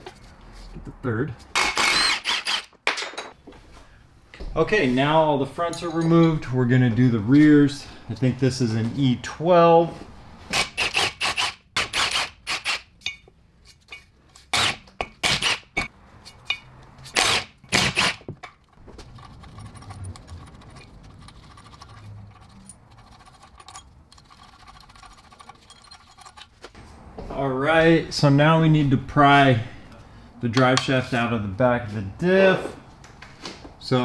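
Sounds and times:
cordless wrench bursts: 1.5 - 2.7
bolts clinking: 5.6 - 6.7, 13.0 - 14.2, 15.0 - 26.8.

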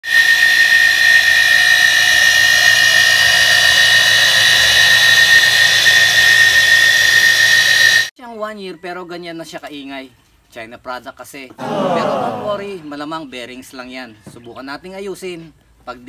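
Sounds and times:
water pump high-pitched whine: 0.0 - 8.1.

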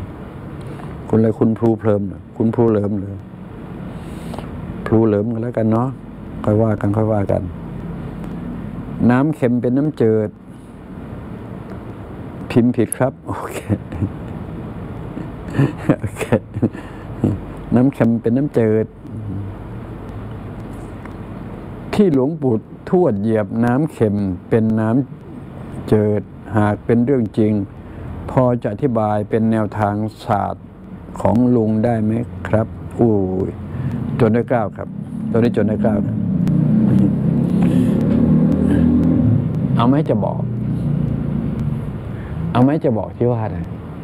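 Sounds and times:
background hiss: 0.0 - 44.0
low engine rumble: 0.0 - 44.0
low hum: 0.0 - 44.0.

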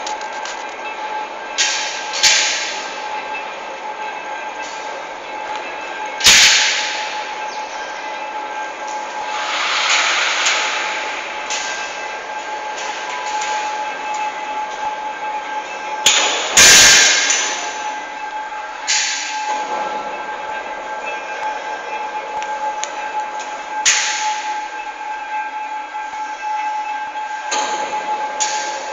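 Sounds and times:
trolleys rolling on steel track: 0.0 - 28.9
loud metallic clangs: 1.6 - 3.0, 6.2 - 7.2, 9.3 - 13.7, 16.0 - 18.0, 18.8 - 20.2, 23.8 - 24.5.

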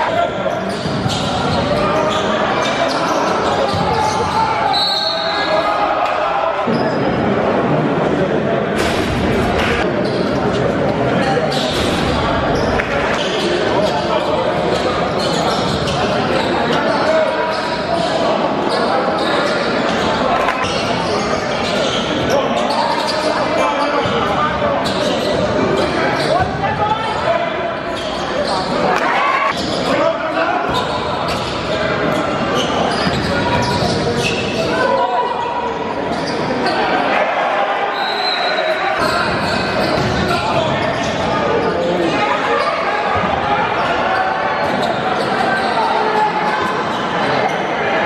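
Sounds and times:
voices of players and spectators: 0.0 - 48.0
basketball bouncing on court: 39.0 - 40.3.

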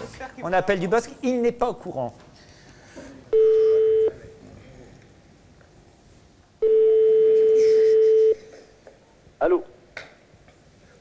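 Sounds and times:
telephone ringback tone: 6.6 - 8.4.

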